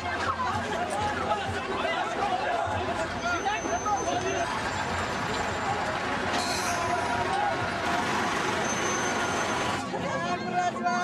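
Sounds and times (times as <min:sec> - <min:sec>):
voices: 0:00.0 - 0:11.0
truck engine rumbling: 0:00.1 - 0:10.0.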